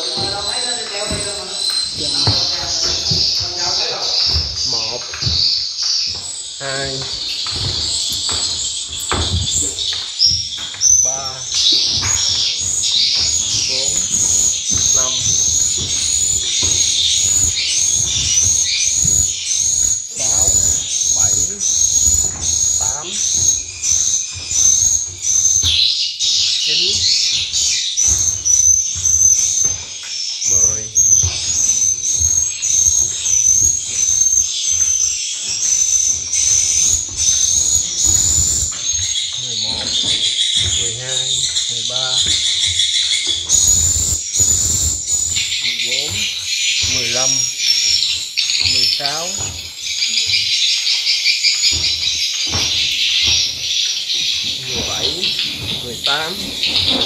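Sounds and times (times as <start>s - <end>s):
handling knocks and rumbles: 0.0s - 57.0s
recorded bird chirping through speakers: 0.0s - 57.0s.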